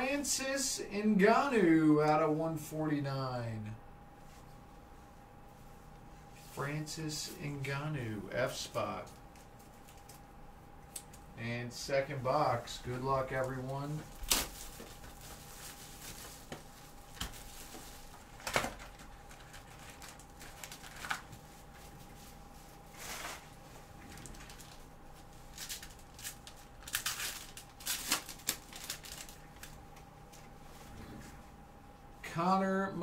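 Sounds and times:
card packs rustling and clicking: 12.9 - 21.4, 24.0 - 29.8
wrapper and cardboard tearing: 14.1 - 16.3, 18.4 - 21.3, 25.5 - 29.8.

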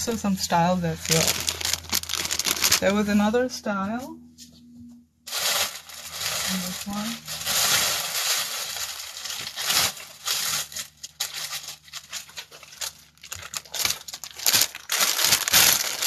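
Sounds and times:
plastic packaging crinkling: 0.0 - 3.3, 5.3 - 16.0.

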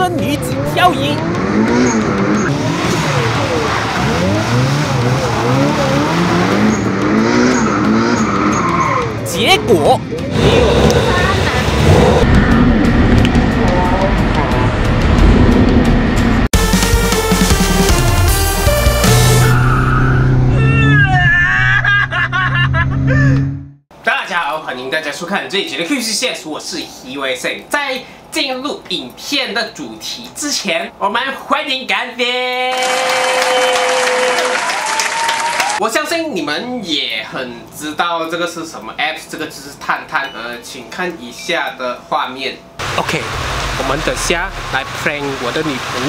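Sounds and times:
car engine revving: 0.0 - 16.5, 42.8 - 46.0
people laughing: 21.2 - 23.4.

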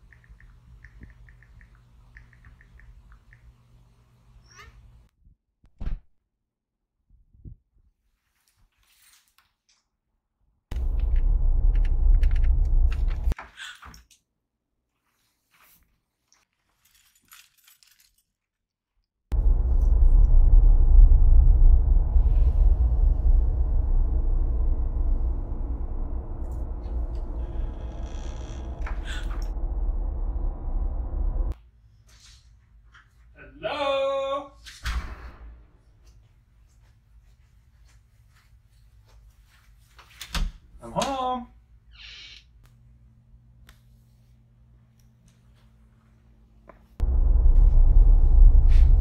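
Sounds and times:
rising wavering pitched sound: 19.3 - 31.6
low droning hum of film score: 19.4 - 31.6.

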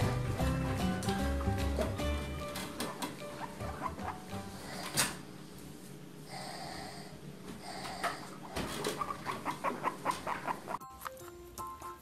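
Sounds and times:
background music: 0.0 - 5.0, 10.6 - 12.0
guinea pig gnawing rind: 8.8 - 11.2.

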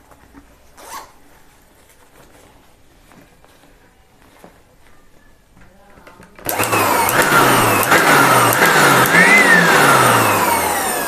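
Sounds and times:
zipper rasp: 0.8 - 1.2.

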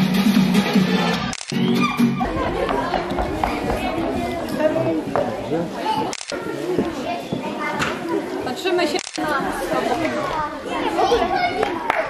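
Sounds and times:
children chattering and calling out: 1.0 - 12.0.

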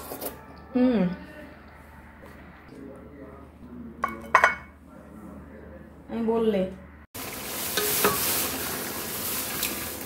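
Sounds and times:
meat sizzling in a pot: 7.2 - 10.0.

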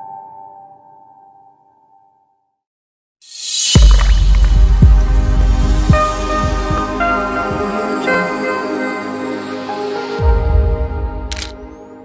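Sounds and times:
liquid drip and splash hits: 3.8 - 4.7.

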